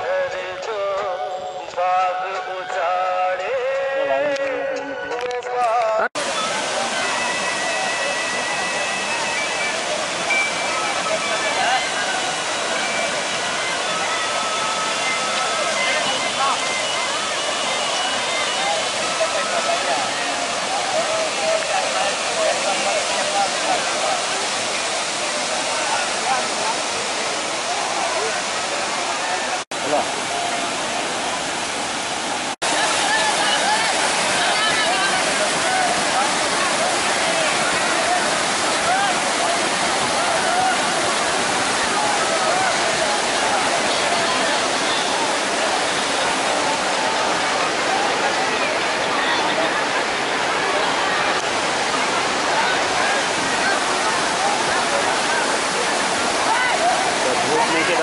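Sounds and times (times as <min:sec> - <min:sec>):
crowd of bathers talking: 0:00.0 - 0:58.0
water rushing over rocks: 0:00.0 - 0:58.0.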